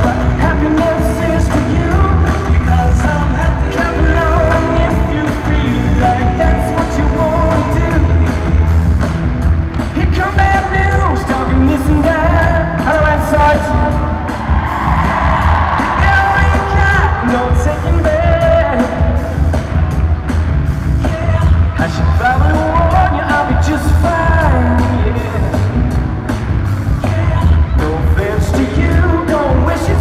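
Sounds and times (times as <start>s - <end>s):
man singing into a microphone: 0.0s - 8.7s, 9.9s - 14.3s, 16.0s - 19.4s, 21.0s - 25.8s, 27.0s - 30.0s
pop music beat: 0.0s - 13.7s.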